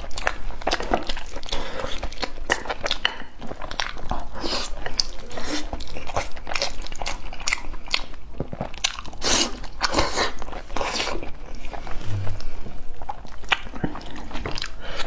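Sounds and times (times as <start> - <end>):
person chewing and biting food: 0.0 - 15.0.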